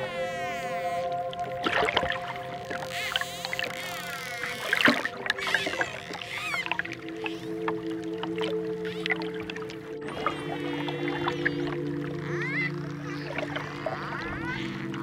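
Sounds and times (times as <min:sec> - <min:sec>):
soft relaxation music: 0:00.0 - 0:15.0
dolphin clicks: 0:02.2 - 0:07.8
dolphin whistles: 0:02.4 - 0:07.5, 0:10.1 - 0:15.0.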